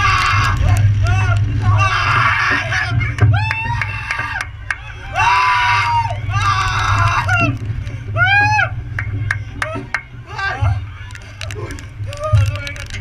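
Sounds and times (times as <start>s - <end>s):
low rumble: 0.0s - 13.0s.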